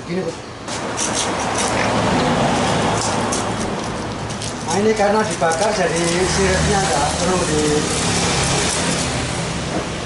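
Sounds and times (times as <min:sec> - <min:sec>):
knife scraping fish scales: 0:00.7 - 0:06.9.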